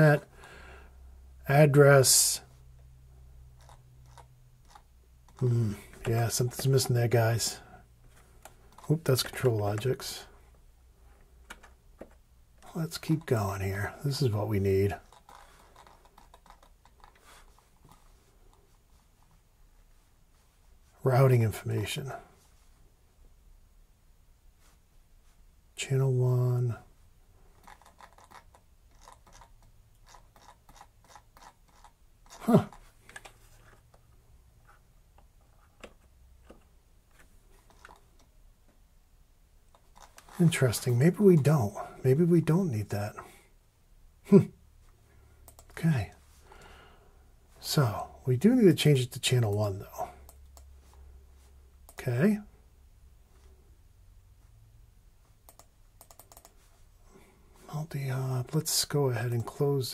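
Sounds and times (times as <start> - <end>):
mouse scroll wheel clicks: 3.6 - 5.4, 15.0 - 18.1, 27.6 - 33.4, 39.7 - 40.4, 55.5 - 56.6.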